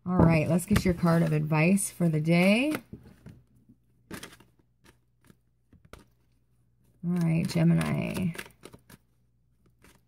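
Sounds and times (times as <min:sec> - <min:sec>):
cards being shuffled: 0:04.0 - 0:10.0.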